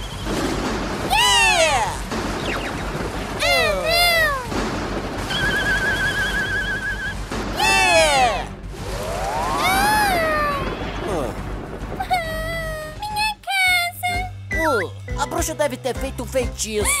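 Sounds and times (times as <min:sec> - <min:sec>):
comic whiny crying: 0:03.4 - 0:04.5, 0:09.5 - 0:11.4
warbling whistle tone: 0:05.3 - 0:07.2.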